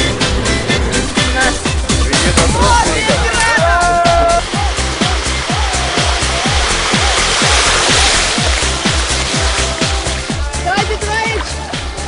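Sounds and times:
kick drum beat: 1.3 - 12.0
electronic dance music: 2.2 - 11.4
rush of noise: 4.4 - 9.8.

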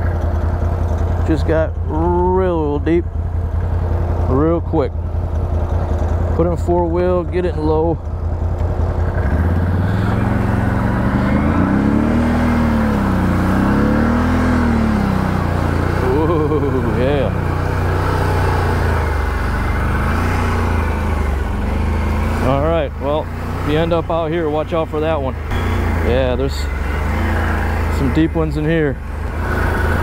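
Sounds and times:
atv engine running under load: 0.0 - 30.0.

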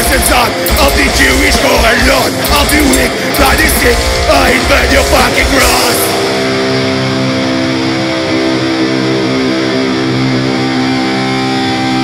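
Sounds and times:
distorted electric guitars ringing chord: 0.0 - 12.0.

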